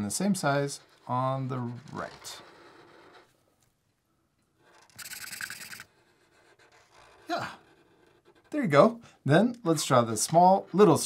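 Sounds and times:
marker scratching on paper: 0:00.1 - 0:03.4, 0:04.6 - 0:09.0.

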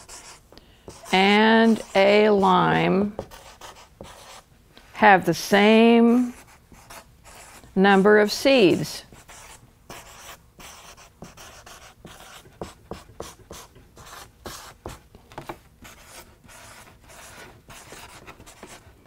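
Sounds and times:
marker scratching on paper: 0:00.0 - 0:02.5, 0:03.2 - 0:04.4, 0:06.2 - 0:15.0, 0:15.8 - 0:18.8.

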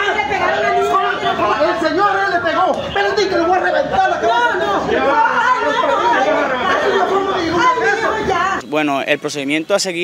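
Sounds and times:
people talking at once: 0:00.0 - 0:10.0.

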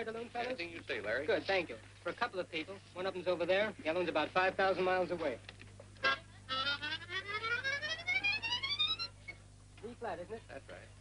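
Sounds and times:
harmonica rising run: 0:06.0 - 0:09.4.

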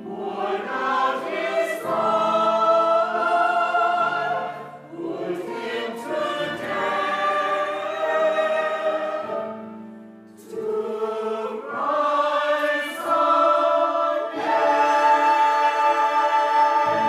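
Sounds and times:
mixed choir singing: 0:00.0 - 0:17.0.

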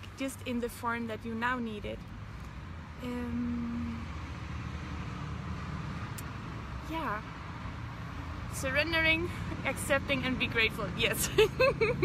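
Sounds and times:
woman's voice: 0:00.2 - 0:02.0, 0:03.0 - 0:04.0, 0:06.9 - 0:07.2, 0:08.5 - 0:11.7.

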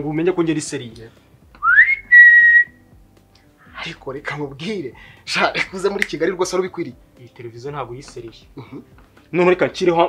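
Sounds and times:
man whistling: 0:01.6 - 0:02.9.

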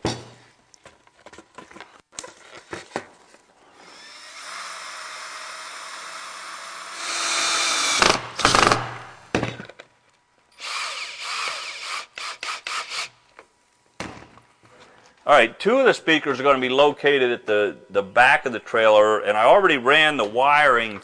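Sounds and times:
power tool motor running: 0:03.8 - 0:08.8, 0:10.6 - 0:13.1
power tool bursts: 0:03.8 - 0:09.0, 0:10.6 - 0:13.2.

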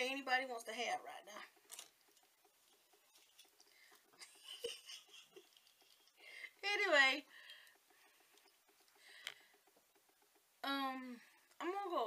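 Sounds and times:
wig rustling and scratching: 0:00.0 - 0:10.6.

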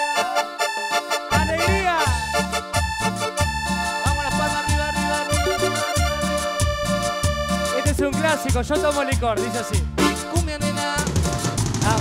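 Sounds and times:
accordion-like melody: 0:00.0 - 0:12.0
bass and percussion cumbia beat: 0:00.0 - 0:12.0.

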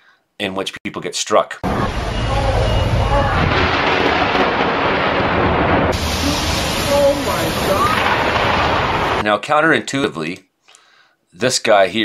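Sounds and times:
people calling out: 0:01.6 - 0:03.8
low thunder rumble: 0:01.6 - 0:09.2
steady rain: 0:01.6 - 0:09.2.

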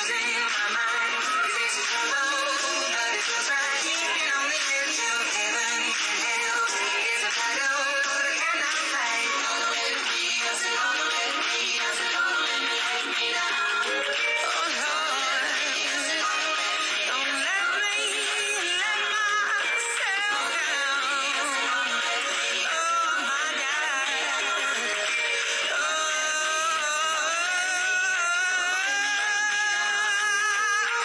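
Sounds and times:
pop song through phone speaker: 0:00.0 - 0:31.0.

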